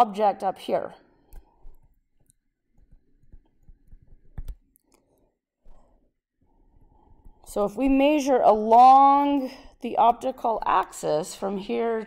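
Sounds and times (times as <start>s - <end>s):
stylus tapping on tablet screen: 1.6s - 4.8s.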